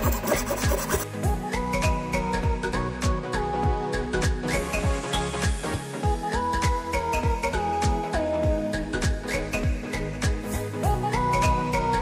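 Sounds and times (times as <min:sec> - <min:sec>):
hacksaw sawing plastic pipe: 0:00.0 - 0:01.0
background music with steady beat: 0:00.0 - 0:12.0.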